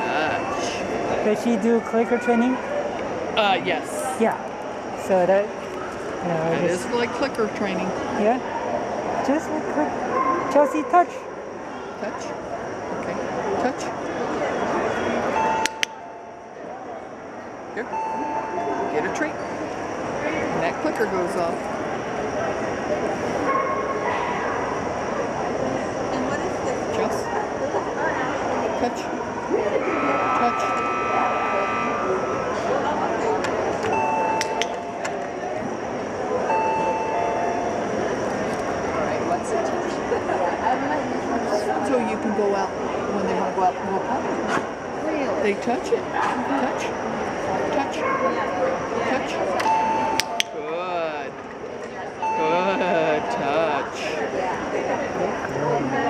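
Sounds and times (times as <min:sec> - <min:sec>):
crowd chatter: 0:00.0 - 0:56.0
doorbell chiming: 0:15.4 - 0:16.3, 0:17.9 - 0:19.1, 0:33.9 - 0:35.1, 0:36.5 - 0:38.0, 0:49.7 - 0:50.5, 0:52.2 - 0:53.6.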